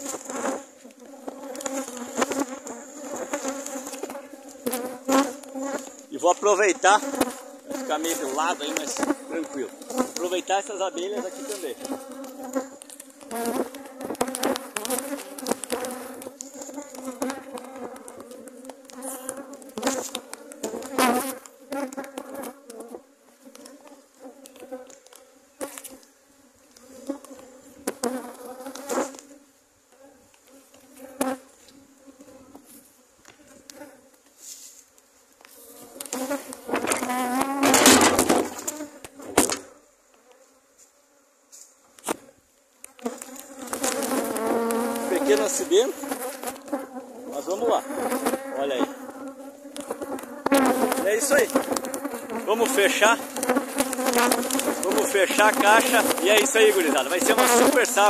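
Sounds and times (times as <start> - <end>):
bees buzzing: 0.0 - 58.0.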